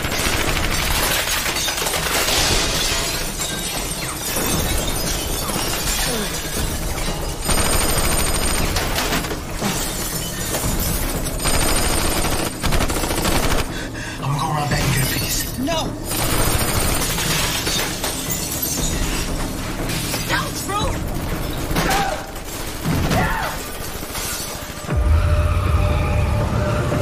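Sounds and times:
glass shattering: 0.5 - 11.6, 14.6 - 16.2, 16.9 - 24.9
background music: 3.2 - 27.0
automatic gunfire: 7.5 - 9.4, 11.4 - 13.7.

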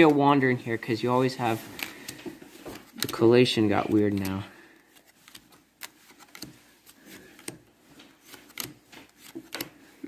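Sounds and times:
cards clicking and sliding: 1.6 - 10.0.

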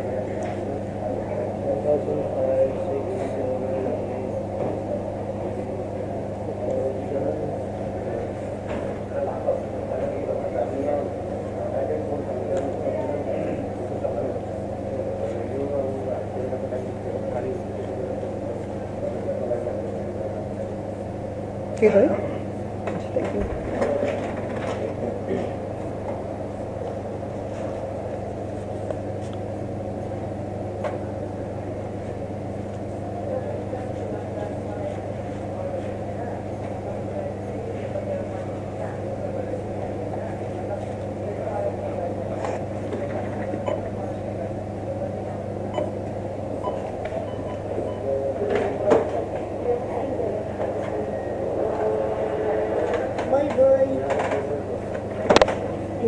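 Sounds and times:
murmur of voices: 0.0 - 56.0
steady low hum: 0.0 - 56.0.

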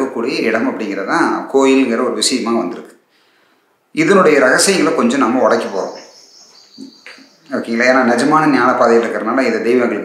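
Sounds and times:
man talking: 0.0 - 3.0, 3.9 - 6.1, 6.8 - 10.0
insects trilling: 5.2 - 8.3.

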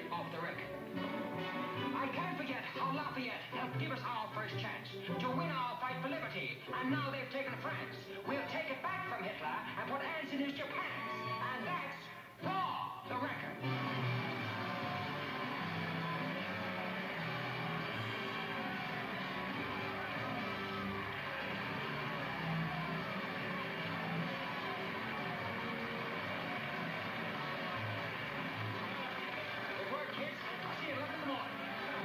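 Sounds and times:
orchestra music through tv speaker: 0.0 - 32.0
crowd voices: 13.7 - 32.0.

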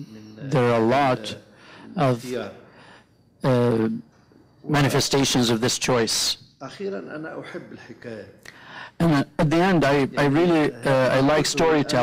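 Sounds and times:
people talking: 0.0 - 2.6, 3.4 - 4.0, 4.7 - 8.4, 9.0 - 12.0.

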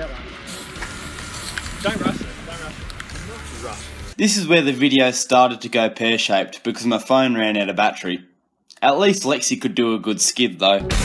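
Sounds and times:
spray paint can hissing: 0.4 - 4.2.

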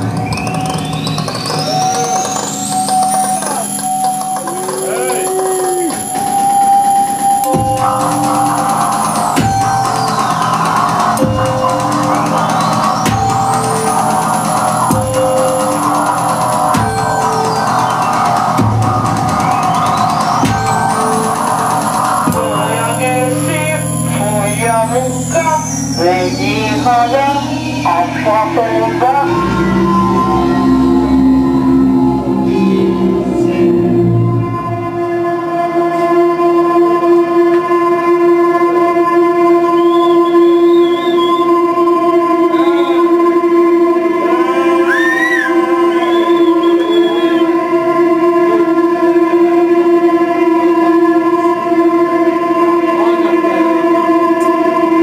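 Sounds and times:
high tone sweeping upward: 0.0 - 36.1
wavering pitched sounds: 0.0 - 36.4
dense sustained drone: 4.4 - 39.9.

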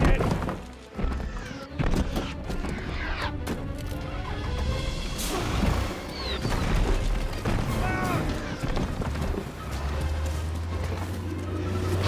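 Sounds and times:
orchestral music: 0.0 - 12.0.

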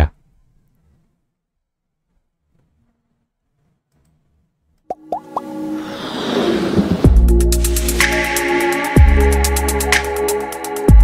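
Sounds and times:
music swell of held tones: 5.2 - 10.9.

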